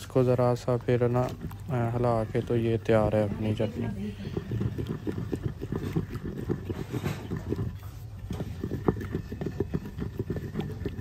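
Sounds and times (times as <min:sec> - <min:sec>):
pestle pounding in stone mortar: 0:03.2 - 0:11.0.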